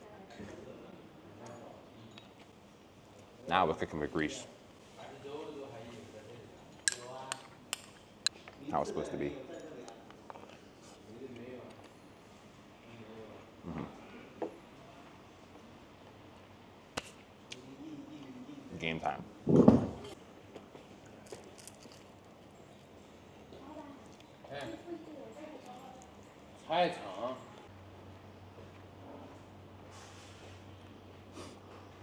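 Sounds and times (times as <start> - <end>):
utensil clinking against a dish: 6.6 - 8.5.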